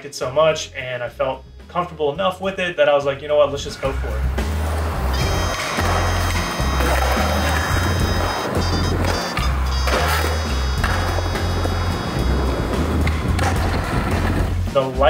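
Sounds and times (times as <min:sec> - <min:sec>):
electronic background music: 0:03.5 - 0:15.0
skateboard wheels rolling on concrete: 0:03.7 - 0:14.8
skateboard clacks: 0:04.4 - 0:14.5.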